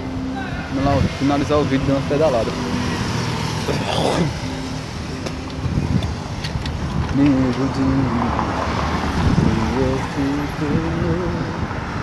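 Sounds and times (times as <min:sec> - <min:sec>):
passing cars: 0:00.0 - 0:12.0
vehicle sweeping past: 0:00.6 - 0:12.0.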